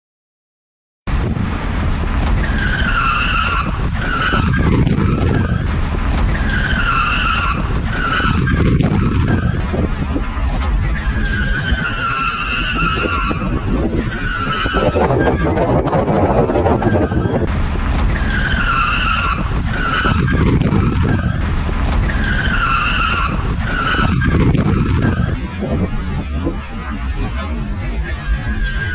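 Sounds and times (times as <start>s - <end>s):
loud car engine: 1.1s - 28.9s
tyres squealing: 2.3s - 28.9s.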